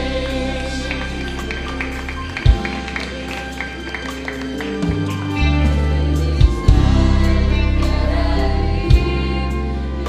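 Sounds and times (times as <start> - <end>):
church band instrumental: 0.0 - 10.0.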